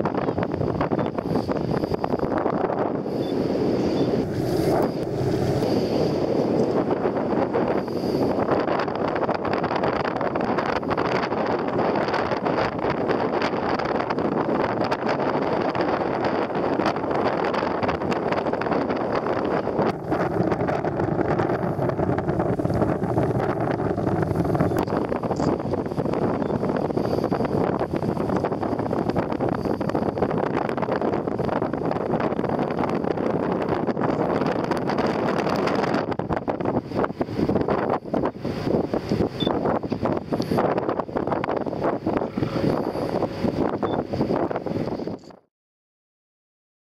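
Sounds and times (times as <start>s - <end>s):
boat running on water: 0.0s - 45.4s
wind buffeting microphone: 0.0s - 45.5s.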